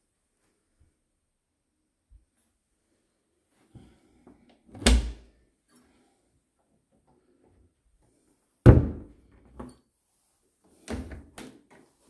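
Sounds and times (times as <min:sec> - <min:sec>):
cupboard door thud: 0:08.7 - 0:09.1.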